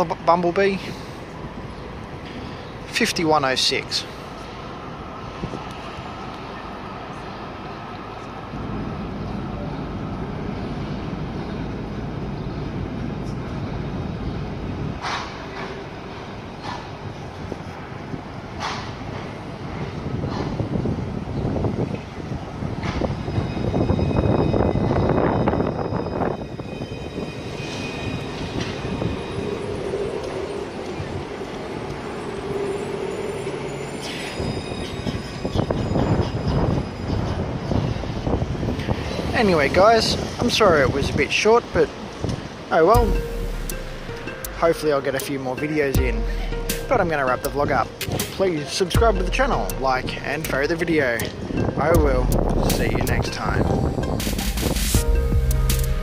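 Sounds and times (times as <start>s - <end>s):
tram running on track: 0.0s - 56.0s
thin high squeal: 32.2s - 37.1s.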